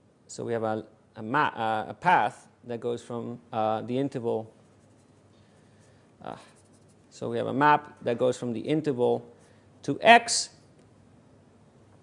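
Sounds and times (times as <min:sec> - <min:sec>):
writing on paper: 0:04.6 - 0:07.1.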